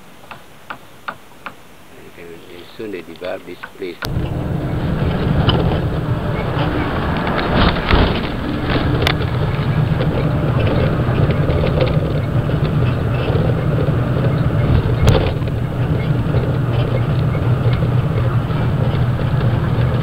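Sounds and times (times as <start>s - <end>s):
road noise: 1.8s - 20.0s
bus engine drone: 3.9s - 20.0s.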